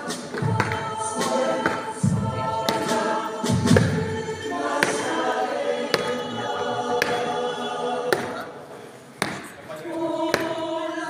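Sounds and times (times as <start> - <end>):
choir singing long notes: 0.0 - 8.8, 9.7 - 11.0.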